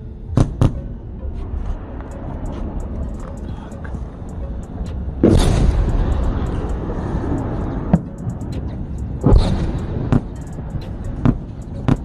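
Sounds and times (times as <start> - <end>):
steady low rumble: 0.0 - 12.0
sharp crack: 5.2 - 6.0.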